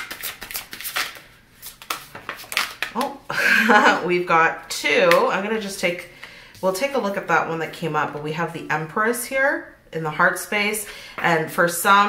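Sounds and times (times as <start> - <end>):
cards shuffling: 0.0 - 3.2.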